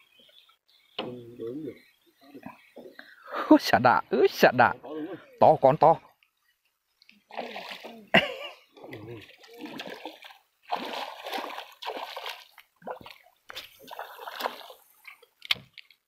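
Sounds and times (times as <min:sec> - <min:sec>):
fish splashing at water surface: 0:08.8 - 0:15.2.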